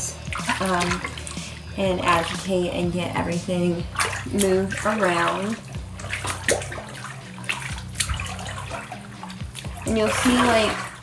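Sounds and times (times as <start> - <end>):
clothes swished in water: 0.0 - 11.0
water sloshing in a bathtub: 0.0 - 11.0
sharp water splashes: 0.1 - 2.6, 3.3 - 11.0.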